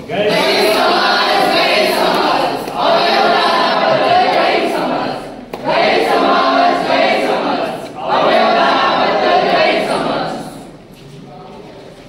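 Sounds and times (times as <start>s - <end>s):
group singing in unison: 0.1s - 10.8s.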